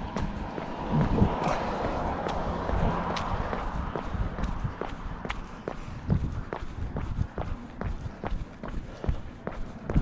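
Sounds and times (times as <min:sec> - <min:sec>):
low rumble: 0:00.0 - 0:08.2
running footsteps on concrete: 0:00.0 - 0:10.0.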